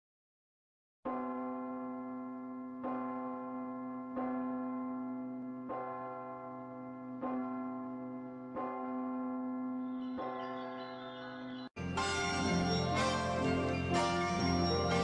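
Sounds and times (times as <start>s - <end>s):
large bell tolling: 1.1s - 15.0s.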